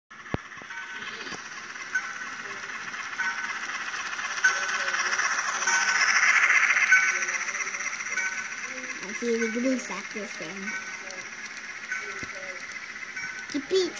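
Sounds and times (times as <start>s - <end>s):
model train rattling whir: 0.1s - 13.9s.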